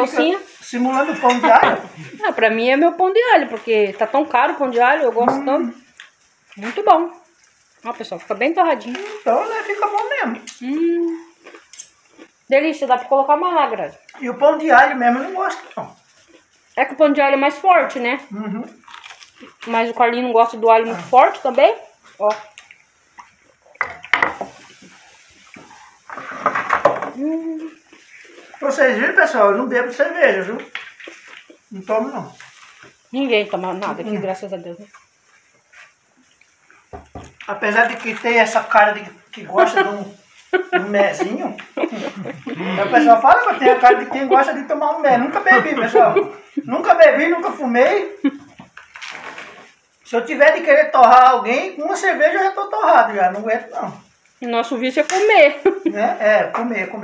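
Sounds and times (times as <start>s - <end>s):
carbonation gas hiss: 0.0s - 57.0s
dishes and cutlery clinking: 0.8s - 2.0s.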